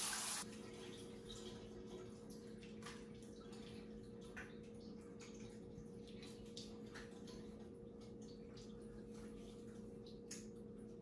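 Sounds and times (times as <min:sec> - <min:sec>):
water dripping in shower: 0:00.0 - 0:11.0.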